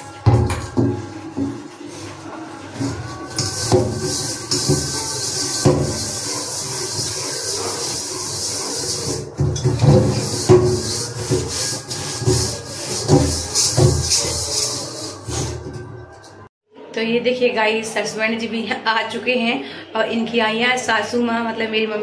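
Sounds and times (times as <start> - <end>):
scourer scrubbing a cooking pot: 0.0 - 16.1.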